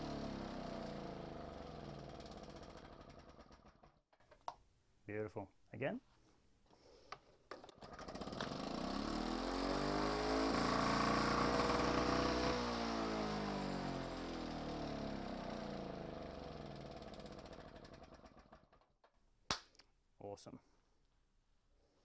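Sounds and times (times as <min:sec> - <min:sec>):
engine and blade winding down: 0:00.0 - 0:03.9, 0:07.8 - 0:18.8
lawn mower engine running: 0:00.0 - 0:03.9, 0:07.6 - 0:18.8
lawn mower pull-start: 0:00.0 - 0:04.0, 0:07.5 - 0:19.1.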